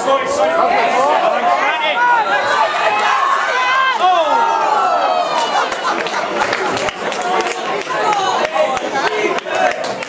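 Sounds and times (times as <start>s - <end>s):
voices shouting and calling: 0.0s - 5.9s.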